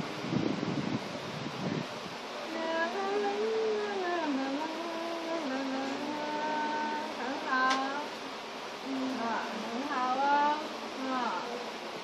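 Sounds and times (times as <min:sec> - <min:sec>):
person humming a slow tune: 0:02.5 - 0:08.1, 0:08.8 - 0:11.6.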